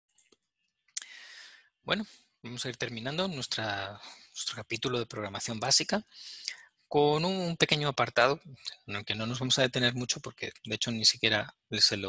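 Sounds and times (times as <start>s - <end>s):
man speaking: 1.0s - 12.0s.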